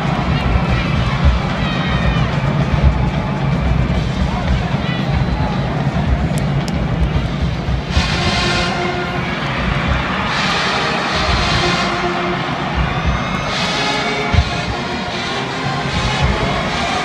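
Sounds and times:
music playing: 0.0 - 17.0
stadium crowd shouting: 0.0 - 17.0.

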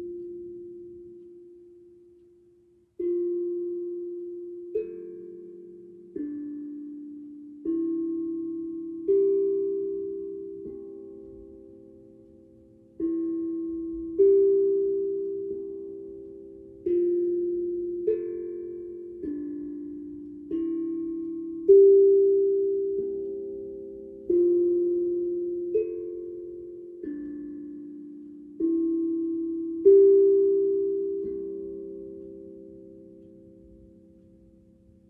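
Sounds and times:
steel tongue drum melody: 0.0 - 35.0.

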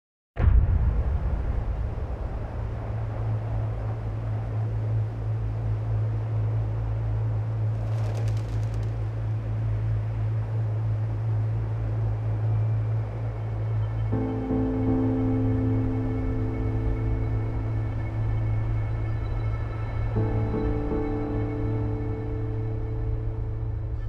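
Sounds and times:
low droning rumble: 0.4 - 24.0.

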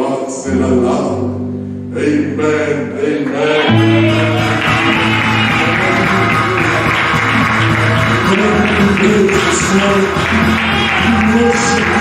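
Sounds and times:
electronic keyboard worship music: 0.0 - 12.0.

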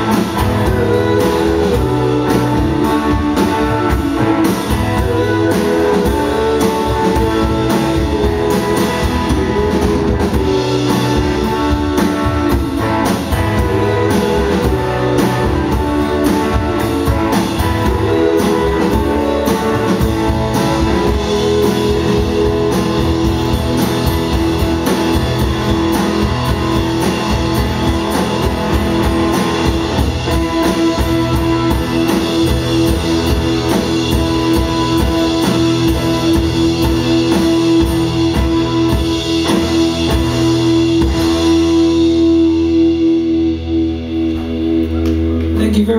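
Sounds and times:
acoustic and electric guitars: 0.0 - 45.9
drum kit: 0.0 - 45.9.

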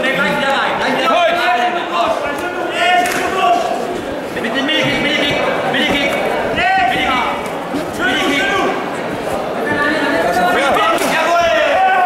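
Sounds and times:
crowd shouting and talking: 0.0 - 12.0.

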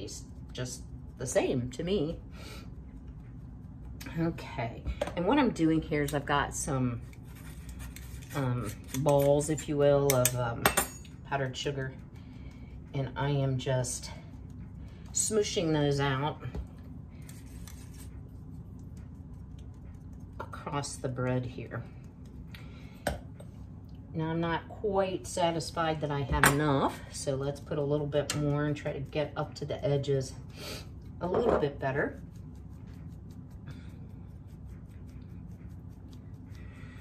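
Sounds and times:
steady low hum: 0.0 - 37.0
spoon scratching metal strainer: 7.0 - 10.5.

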